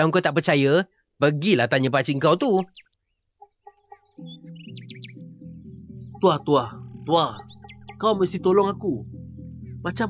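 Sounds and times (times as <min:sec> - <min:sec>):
high bird chirps: 0:02.4 - 0:08.7
background music with held notes: 0:02.5 - 0:10.0.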